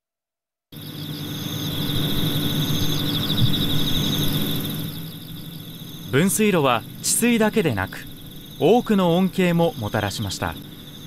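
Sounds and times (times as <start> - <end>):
insects chirping: 0.7 - 11.0.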